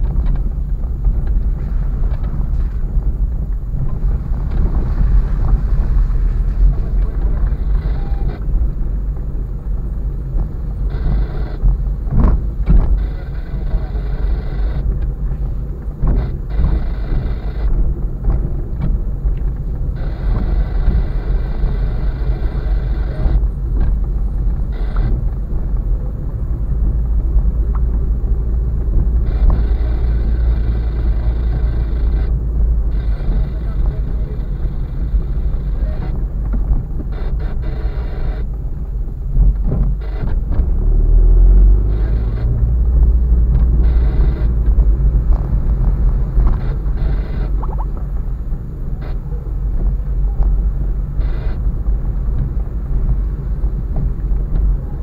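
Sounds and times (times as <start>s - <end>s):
car engine: 0.0s - 55.0s
tyre rumble on rough road: 0.0s - 55.0s.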